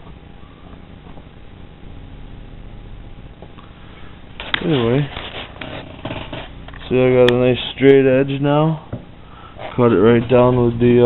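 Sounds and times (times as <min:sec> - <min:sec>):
rustling and scraping handling noise: 0:04.0 - 0:07.0.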